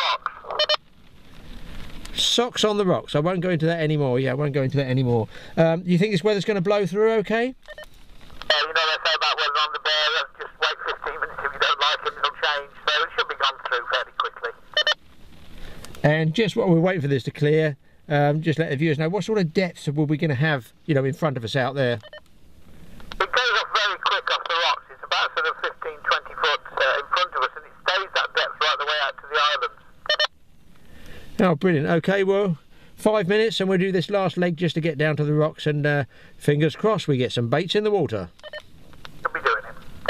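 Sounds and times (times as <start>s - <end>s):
man talking over walkie-talkie: 0.0s - 0.8s, 8.4s - 15.0s, 16.0s - 22.1s, 23.2s - 30.3s, 31.4s - 38.4s, 39.2s - 39.9s.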